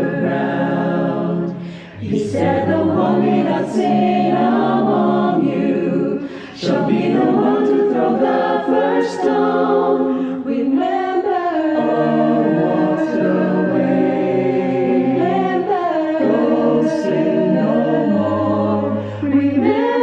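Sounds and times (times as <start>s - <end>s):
choir singing in harmony: 0.0s - 20.0s.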